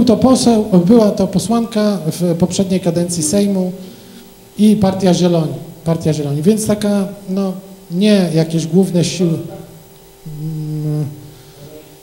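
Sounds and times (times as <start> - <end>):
man humming in hesitation: 10.2 - 11.9.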